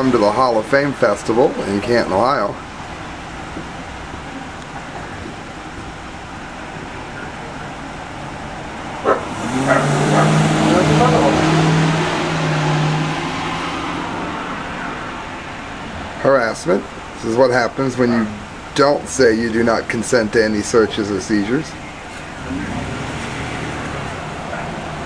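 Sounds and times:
vehicle driving past: 8.2 - 16.1, 22.1 - 25.0.

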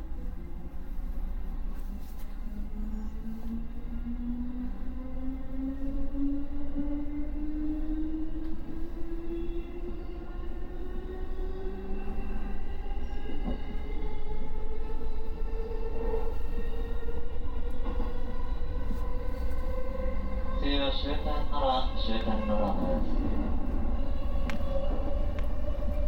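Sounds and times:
wheels rumbling on rail: 7.8 - 26.0.

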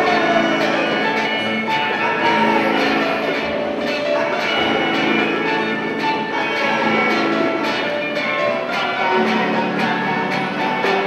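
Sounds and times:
children playing instruments: 0.0 - 11.0.

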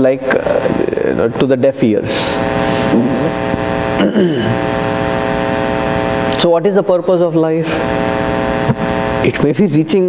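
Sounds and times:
buzzing hum: 0.0 - 10.0.

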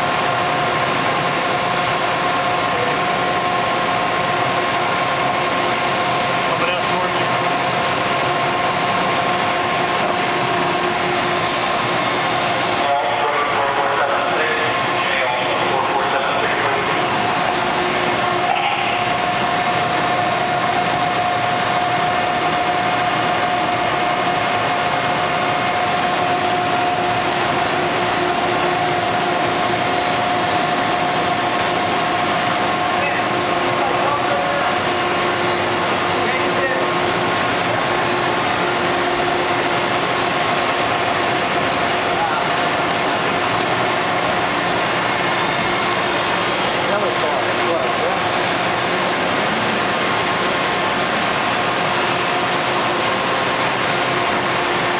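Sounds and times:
low machine hum: 0.0 - 54.9
machinery mechanical rush: 0.0 - 54.9
mid-pitched machine whine: 0.0 - 54.9.

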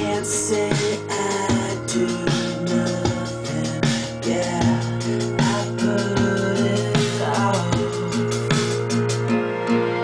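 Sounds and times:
drum beat: 0.0 - 9.3
rock song: 0.0 - 10.0.

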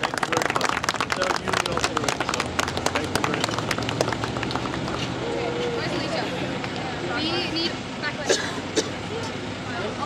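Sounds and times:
small group clapping: 0.0 - 5.2.

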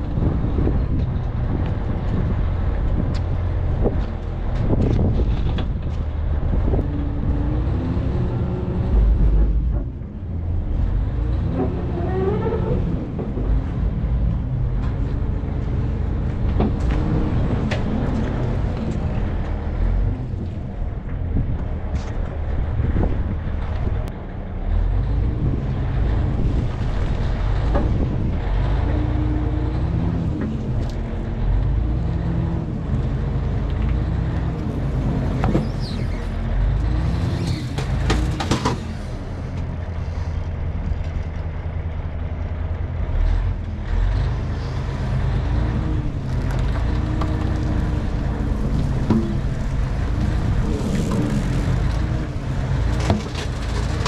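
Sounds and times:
diesel engine revving: 0.0 - 54.0.

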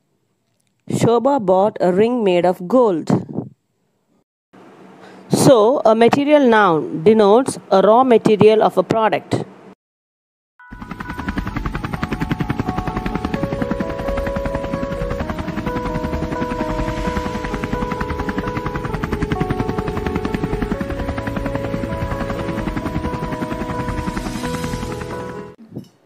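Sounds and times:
melody of held notes: 10.6 - 25.6
helicopter rotor chopping: 10.7 - 25.6.

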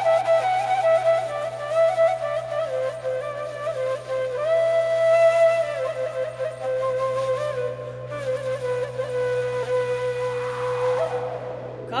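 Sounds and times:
flute holding long note: 0.0 - 12.0.

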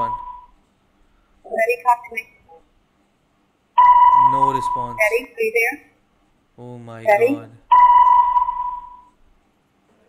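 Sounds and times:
electronic ping: 0.0 - 0.5, 3.8 - 5.1, 7.7 - 9.1.

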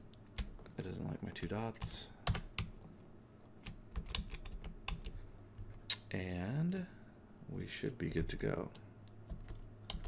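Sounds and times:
typing on computer keyboard: 3.6 - 5.2, 9.3 - 10.0.

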